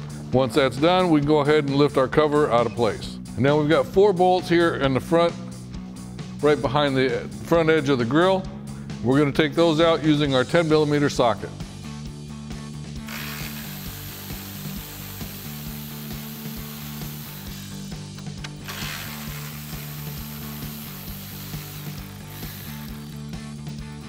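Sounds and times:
electric ratchet running: 0:13.1 - 0:23.6.

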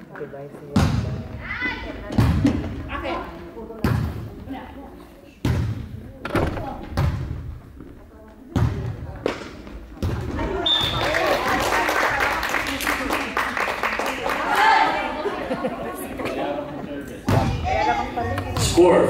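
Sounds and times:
volleyball thumps echoing: 0:02.0 - 0:03.0, 0:03.8 - 0:04.5, 0:05.4 - 0:11.0, 0:17.2 - 0:18.9
whistle blast: 0:10.6 - 0:11.1.

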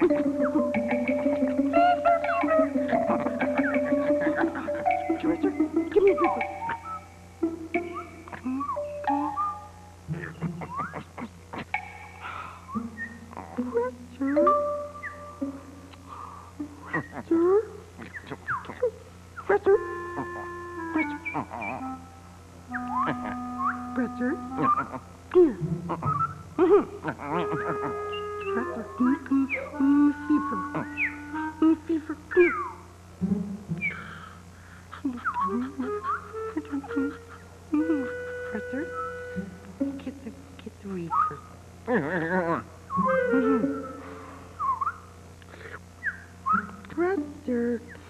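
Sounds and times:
soft background music: 0:00.0 - 0:10.0, 0:13.3 - 0:15.8, 0:19.4 - 0:26.0, 0:27.3 - 0:32.2, 0:35.5 - 0:40.3
cartoon dog whining and yipping: 0:01.8 - 0:05.4
whistle-like chirps: 0:06.0 - 0:07.1, 0:07.8 - 0:09.8, 0:22.7 - 0:24.0, 0:26.0 - 0:26.4, 0:32.3 - 0:32.8, 0:33.8 - 0:34.2, 0:38.0 - 0:39.6, 0:42.9 - 0:45.1, 0:46.0 - 0:46.8.

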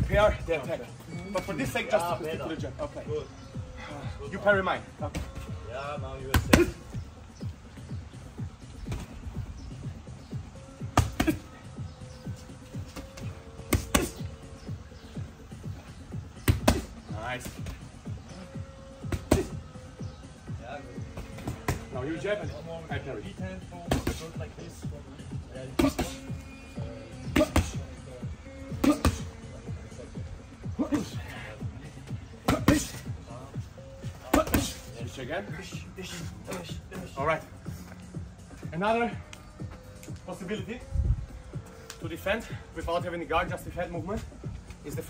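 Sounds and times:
background music with steady beat: 0:00.0 - 0:45.0
boxing gloves smacking: 0:10.9 - 0:11.4, 0:12.9 - 0:14.3, 0:16.4 - 0:16.9.

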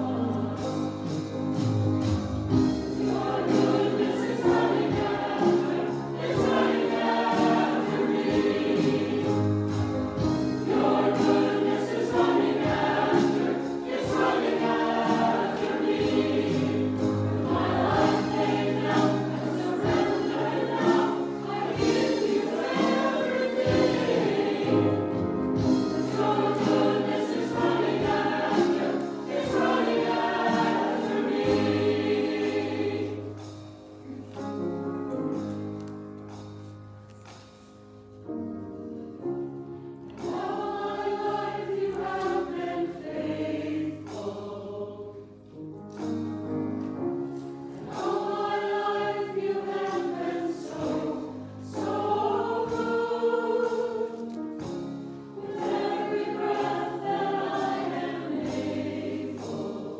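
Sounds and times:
choir singing a hymn: 0:00.0 - 0:34.4, 0:39.5 - 0:45.6, 0:47.2 - 0:59.9.

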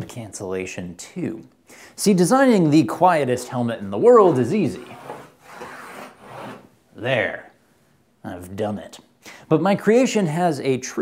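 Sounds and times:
chalk scraping on blackboard: 0:04.2 - 0:06.7.

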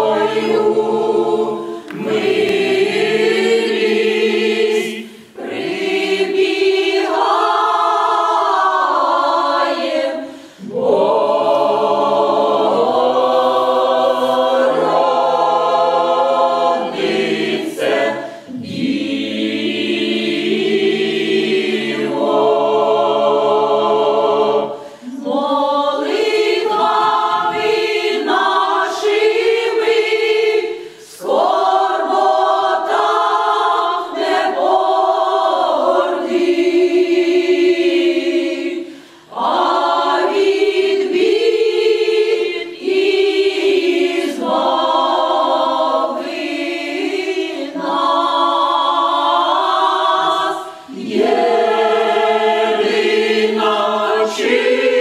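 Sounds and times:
mixed choir singing a cappella: 0:00.0 - 0:55.0.

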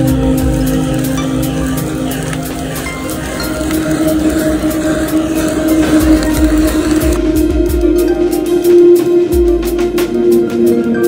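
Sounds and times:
background music: 0:00.0 - 0:11.0
blowtorch flame hissing: 0:00.1 - 0:07.3.

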